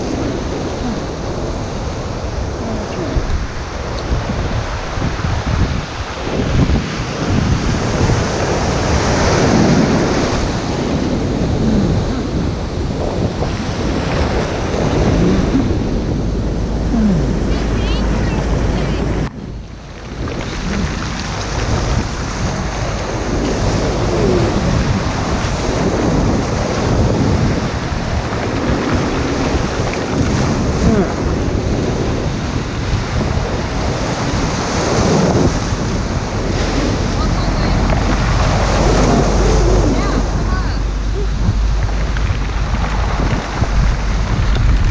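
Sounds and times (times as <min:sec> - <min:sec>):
waves breaking and surf rushing: 0:00.0 - 0:44.9
wind buffeting microphone: 0:00.0 - 0:44.9.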